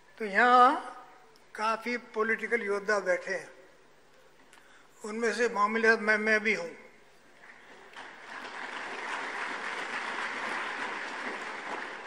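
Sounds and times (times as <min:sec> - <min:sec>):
large audience applauding: 0:07.5 - 0:12.0.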